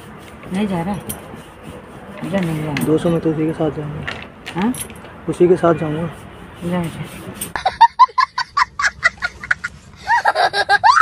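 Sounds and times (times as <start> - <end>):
small child laughing: 7.5 - 11.0.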